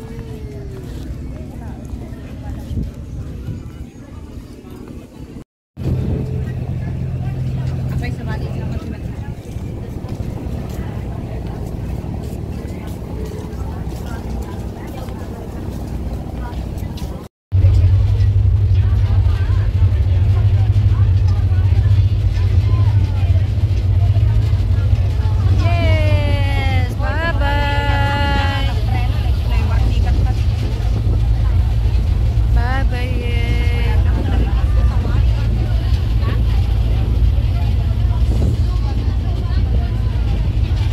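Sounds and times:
ferry engine droning: 0.0 - 40.9.

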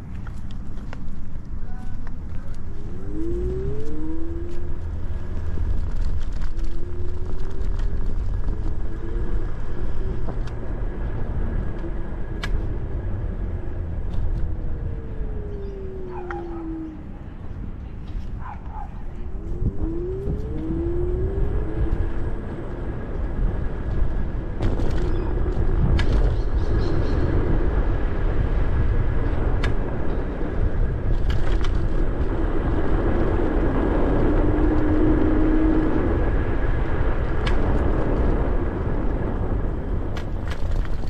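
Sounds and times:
rumble of wind and wheels: 0.0 - 41.0.

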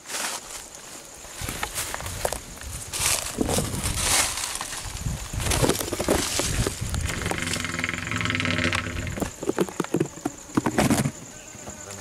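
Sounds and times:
insect buzzing: 0.4 - 12.0
rustling and knocks: 3.0 - 11.8.

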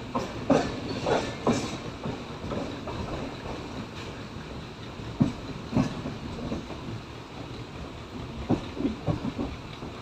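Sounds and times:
train rumble: 0.0 - 10.0
train wheels clacking on rail joints: 0.0 - 10.0.

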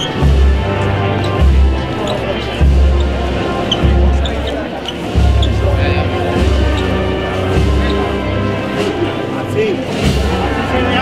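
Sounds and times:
wind band playing a march: 0.0 - 11.0.

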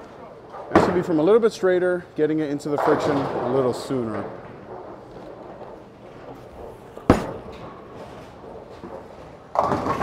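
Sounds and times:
bowling ball rolling: 4.2 - 10.0.

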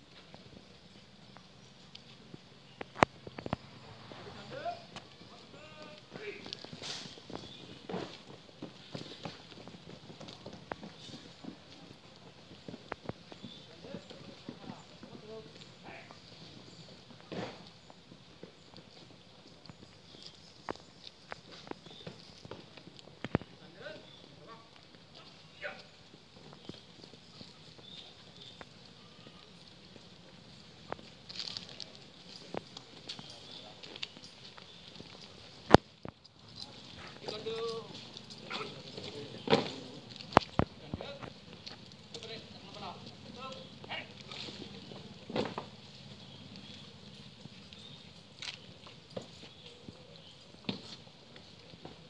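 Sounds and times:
boots on paved road: 0.0 - 52.0.

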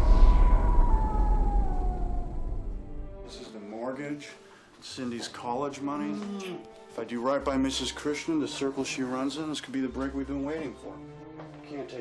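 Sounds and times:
deep rumble drone: 0.0 - 3.3
siren-like falling tone: 0.0 - 3.3.

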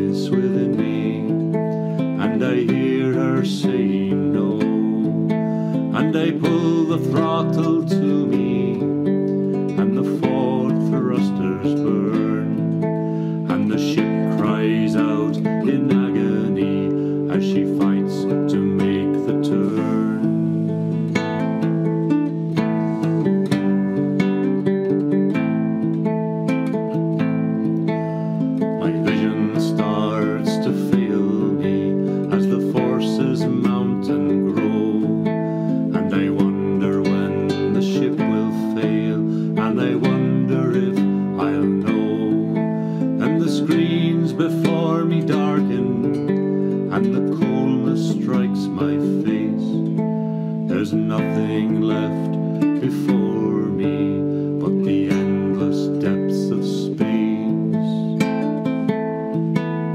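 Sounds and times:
man singing: 0.0 - 25.8, 27.1 - 59.0
classical guitar picked chords: 0.0 - 59.9.

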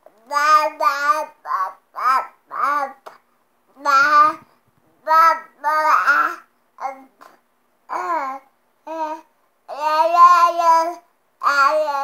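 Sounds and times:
toddler babbling: 0.2 - 3.2, 3.8 - 7.2, 7.9 - 12.0.

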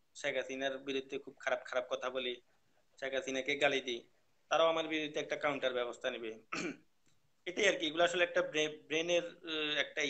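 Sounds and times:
man speaking: 0.1 - 6.6, 7.4 - 10.0.

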